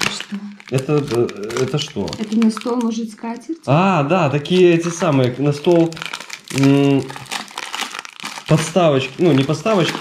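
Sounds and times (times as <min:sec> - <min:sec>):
plastic film crinkling: 0:00.0 - 0:10.0.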